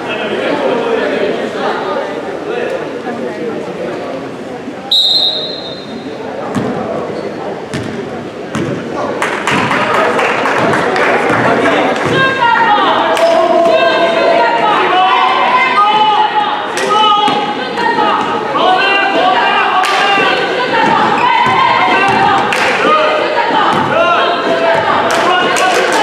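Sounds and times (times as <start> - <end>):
voices of players and crowd: 0.0 - 26.0
referee's whistle: 4.9 - 6.1
shoe squeaks: 5.0 - 6.1
basketball bouncing on floor: 7.7 - 8.8.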